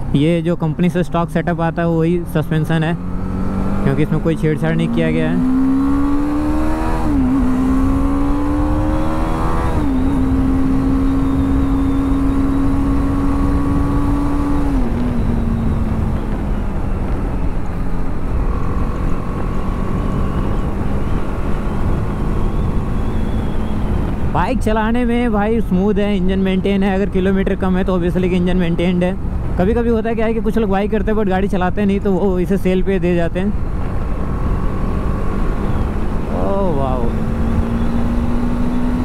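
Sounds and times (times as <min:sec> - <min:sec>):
motorcycle engine accelerating: 0:01.6 - 0:25.2, 0:32.7 - 0:39.0.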